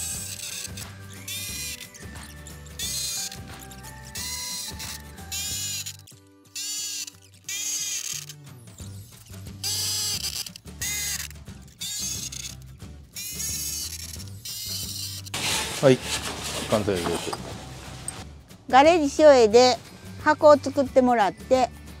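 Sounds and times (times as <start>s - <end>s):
electric drill boring plywood: 0.0s - 5.9s
background music: 0.0s - 22.0s.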